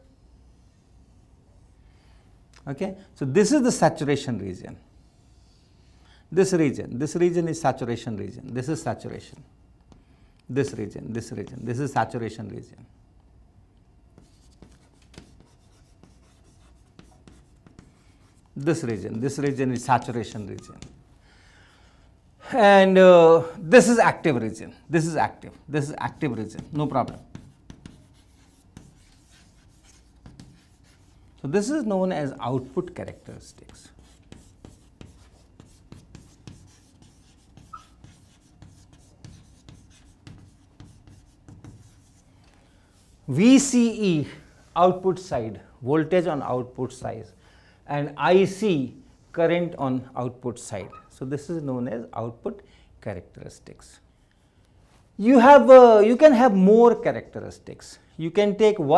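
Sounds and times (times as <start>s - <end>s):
chalk scratching on blackboard: 14.2s - 21.0s, 26.0s - 31.3s, 32.6s - 42.3s
chalk tapping: 14.2s - 21.0s, 26.1s - 31.2s, 33.4s - 42.2s
chalk squeak: 20.0s - 21.0s, 33.7s - 42.2s, 50.8s - 51.4s.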